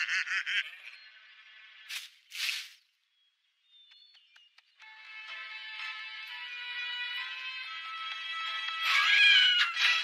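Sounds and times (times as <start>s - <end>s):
quick swishes: 1.9s - 2.8s
background music: 4.4s - 10.0s.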